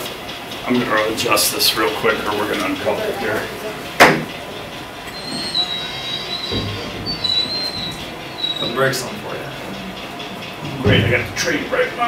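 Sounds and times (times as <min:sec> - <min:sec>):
high-pitched wheel squeal: 0:05.0 - 0:10.0.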